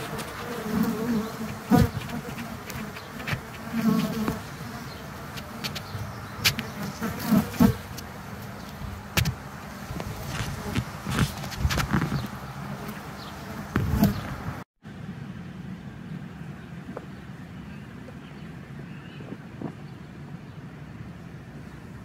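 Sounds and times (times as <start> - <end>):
bees buzzing: 0.0 - 14.6.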